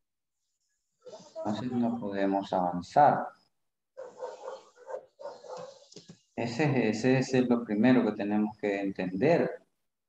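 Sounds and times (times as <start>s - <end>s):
dog barking over video call: 1.0s - 2.4s, 4.0s - 6.0s.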